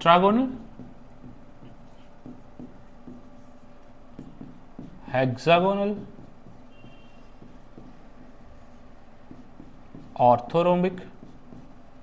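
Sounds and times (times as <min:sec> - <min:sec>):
pen writing on a board: 0:00.4 - 0:12.0.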